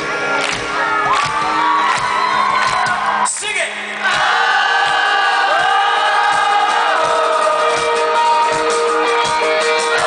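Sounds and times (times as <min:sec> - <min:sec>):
crowd cheering: 0:00.2 - 0:10.0
live rock band: 0:04.2 - 0:10.0.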